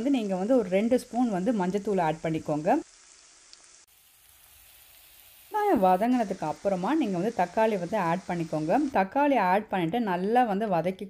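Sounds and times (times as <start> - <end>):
onions sizzling in oil: 0.0 - 9.5.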